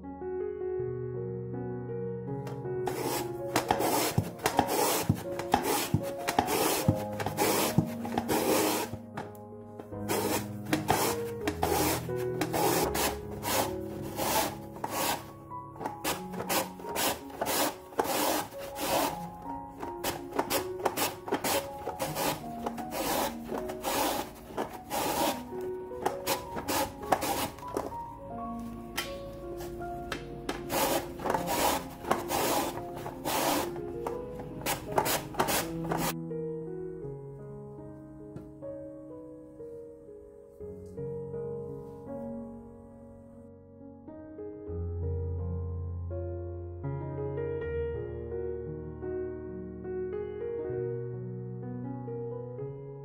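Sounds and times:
soft background music: 0.0 - 46.9
quince rasping on mandoline blade: 2.9 - 9.0, 10.0 - 28.0, 30.5 - 36.2.

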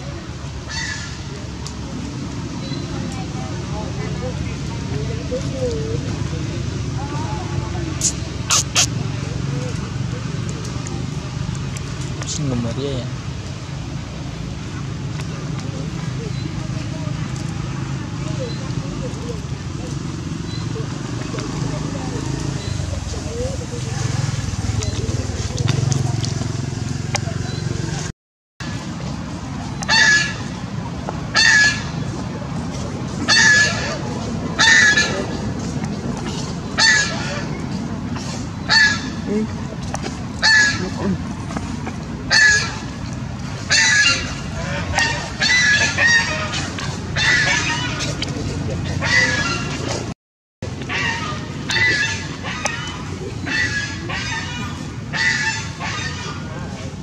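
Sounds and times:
sharp crackling: 8.0 - 9.0.

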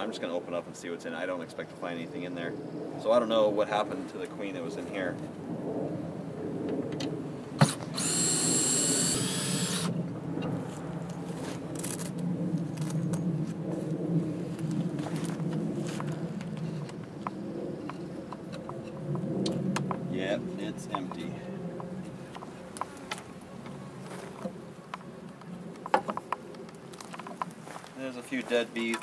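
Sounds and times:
cordless drill motor whining: 7.6 - 10.0.

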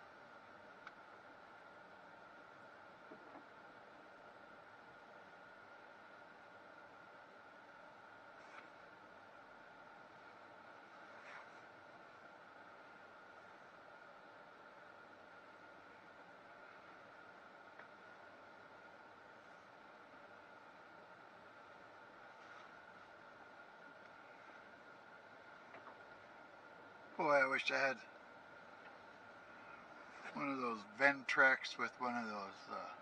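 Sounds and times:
faint hiss: 0.0 - 33.0.

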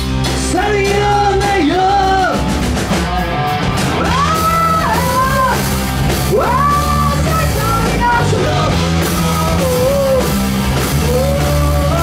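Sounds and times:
drum kit: 0.0 - 12.0
electric guitar: 0.0 - 12.0
male singer singing: 0.4 - 2.5, 6.3 - 12.0.

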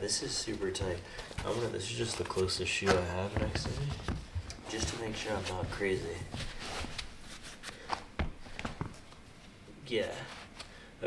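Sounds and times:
shoe rustling: 0.0 - 9.4.

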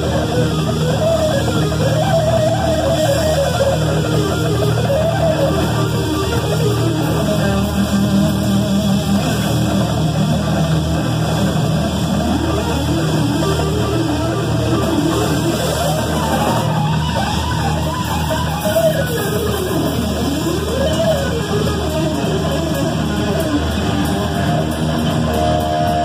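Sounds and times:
distorted electric guitar lead: 0.0 - 26.0.

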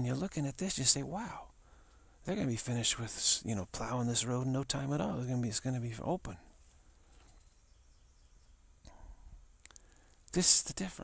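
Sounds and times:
faint low hum: 0.0 - 11.0
faint click: 9.6 - 10.4.

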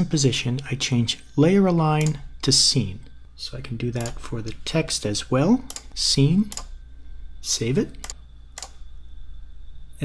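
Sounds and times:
faint electrical hum: 0.0 - 10.0
sharp computer clicks: 1.9 - 2.6, 3.9 - 4.3, 5.6 - 6.8, 7.9 - 8.8.

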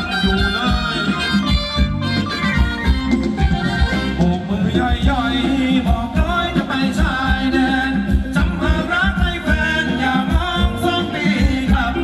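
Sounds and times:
dance band music over loudspeakers: 0.0 - 12.0.

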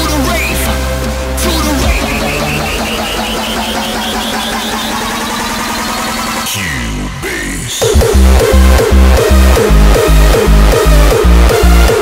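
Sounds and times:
short high synth note repeating: 1.8 - 6.5
gritty buzzing synth: 1.8 - 12.0.

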